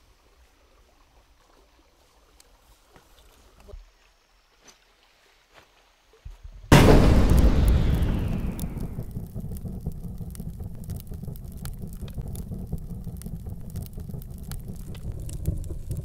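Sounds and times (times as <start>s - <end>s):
deep boom: 6.7s - 16.0s
low rumble with crackles: 6.7s - 16.0s.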